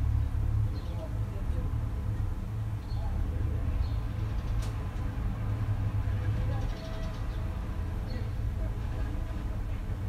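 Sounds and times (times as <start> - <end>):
distant road traffic: 0.0 - 10.0.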